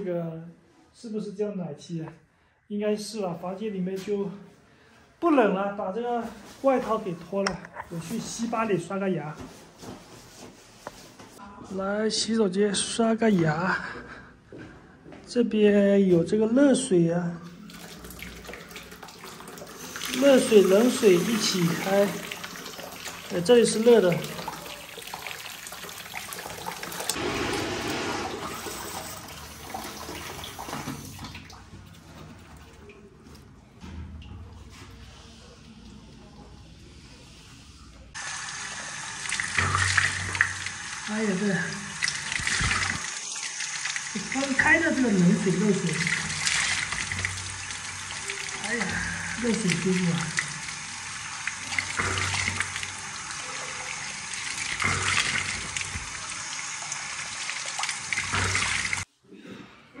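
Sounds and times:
tap water splashing into basin: 17.6 - 31.9, 38.7 - 44.6, 45.8 - 59.1.

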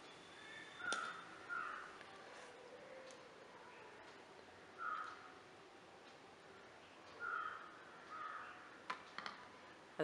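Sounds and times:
crow cawing: 0.8 - 2.0, 4.8 - 5.3, 7.2 - 8.7.

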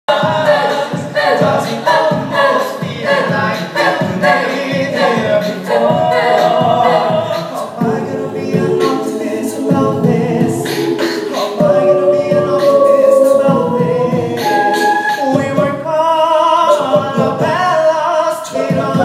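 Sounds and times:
vocal group singing in harmony: 0.1 - 19.0
steady beat: 0.2 - 15.9.

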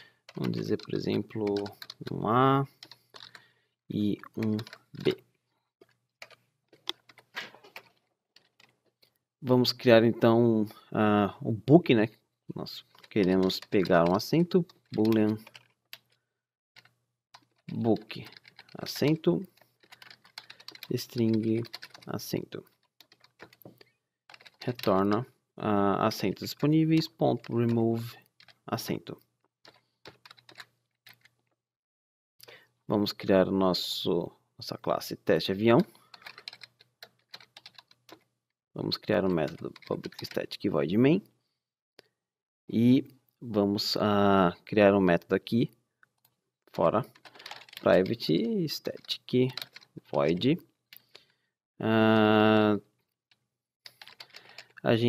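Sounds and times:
keyboard typing: 0.3 - 3.4, 4.2 - 5.2, 5.8 - 9.0, 12.8 - 16.2, 16.8 - 25.3, 26.1 - 28.9, 29.7 - 31.4, 35.8 - 38.3, 39.0 - 40.5, 47.0 - 50.4, 53.9 - 54.9.

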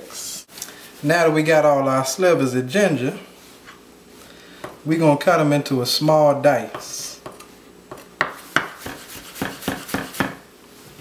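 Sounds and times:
knife chopping on plastic board: 6.7 - 10.4.

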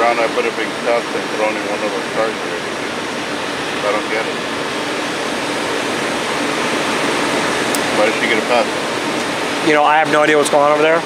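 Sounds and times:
steady rushing hiss: 0.0 - 11.0.

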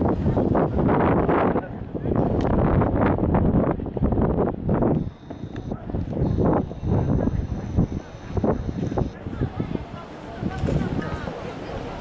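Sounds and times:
people chatting: 0.0 - 2.6, 5.0 - 12.0
wind buffeting microphone: 0.0 - 12.0
faint high buzz: 4.9 - 9.2.

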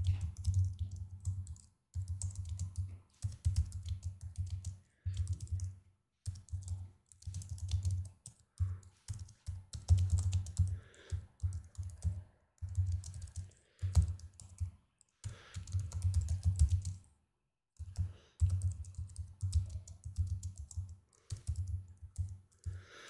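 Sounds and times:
computer keyboard typing: 0.0 - 17.1, 17.8 - 22.8.

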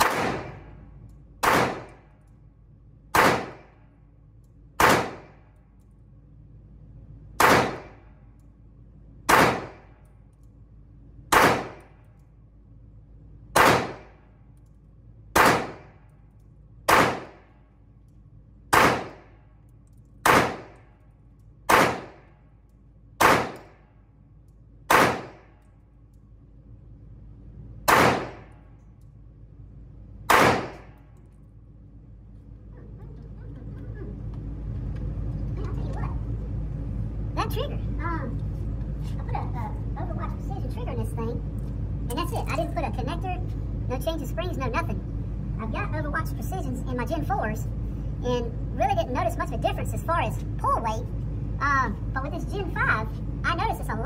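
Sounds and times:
pistol shots indoors: 0.0 - 6.2, 7.2 - 32.5.

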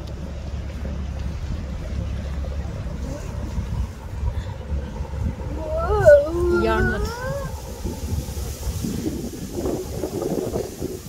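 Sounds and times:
wind buffeting microphone: 0.0 - 11.0
high voice rising call: 5.4 - 7.7.

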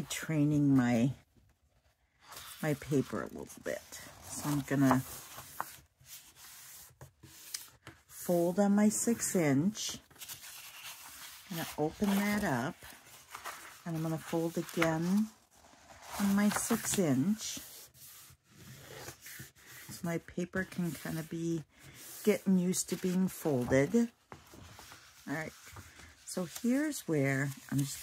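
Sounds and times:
paper rustling: 1.8 - 8.3, 9.9 - 28.0.

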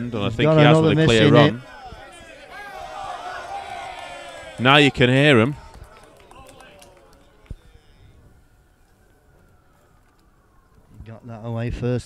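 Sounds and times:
faint distant voices: 0.0 - 11.3.

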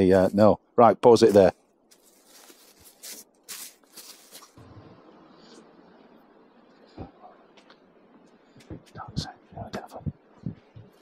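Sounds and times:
plastic bag rustling: 1.2 - 4.6.

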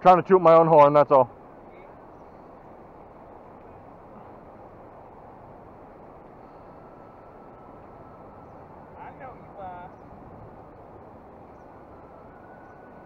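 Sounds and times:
river current rushing: 0.0 - 13.0.

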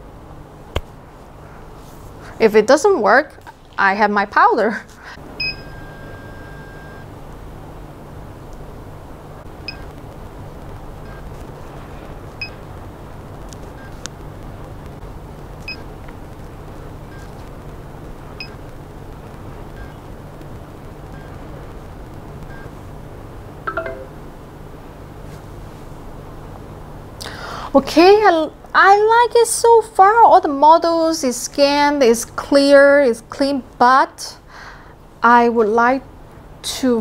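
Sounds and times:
steady low hum: 0.0 - 31.2.

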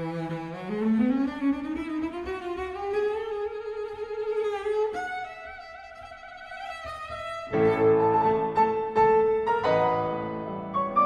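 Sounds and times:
bowed double bass: 0.0 - 5.2.

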